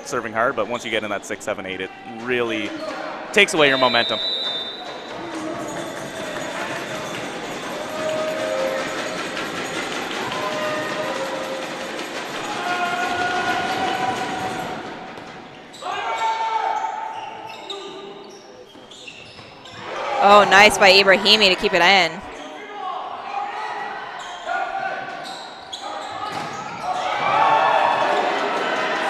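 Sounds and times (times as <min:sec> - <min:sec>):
players calling: 0:00.6 - 0:22.4
shoe squeaks: 0:03.6 - 0:09.8, 0:15.5 - 0:19.9, 0:24.2 - 0:26.8
murmur of voices: 0:19.7 - 0:25.2.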